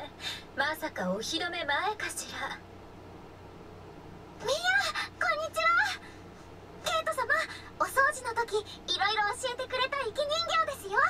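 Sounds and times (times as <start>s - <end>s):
girl's high-pitched vocal sounds: 4.4s - 6.0s.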